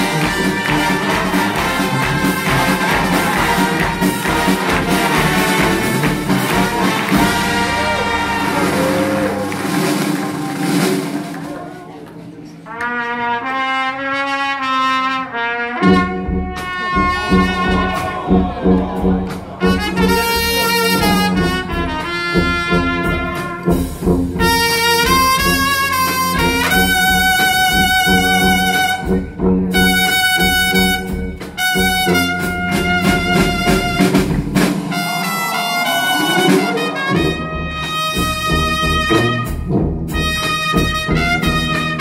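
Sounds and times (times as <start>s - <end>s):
horns playing a melody: 0.0s - 12.0s, 12.7s - 42.0s
brass band playing: 0.0s - 42.0s.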